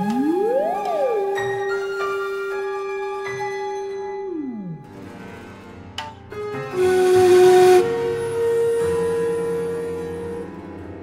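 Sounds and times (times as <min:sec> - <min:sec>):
breathy bamboo flute notes: 0:00.0 - 0:05.0, 0:06.7 - 0:11.0.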